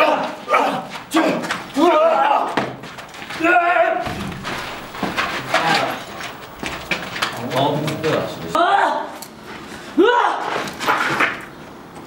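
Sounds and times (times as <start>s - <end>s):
low voices: 1.8s - 9.2s
shuffling footsteps on concrete: 2.4s - 8.5s
knocks on concrete floor: 4.0s - 7.4s.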